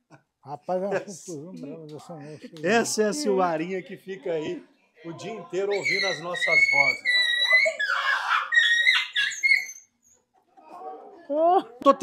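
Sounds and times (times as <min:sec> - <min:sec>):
woman squealing and laughing: 0:05.9 - 0:09.6.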